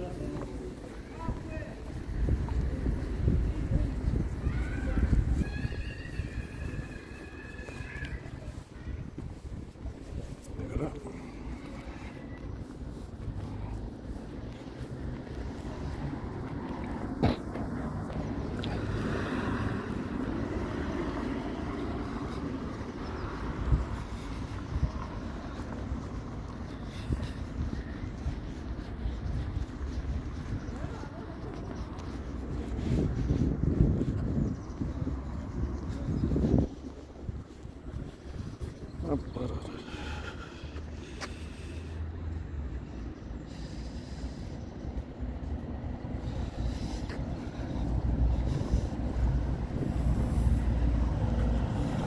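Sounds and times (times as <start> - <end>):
road traffic passing: 0.0 - 52.0
wind rumbling on microphone: 0.0 - 52.0.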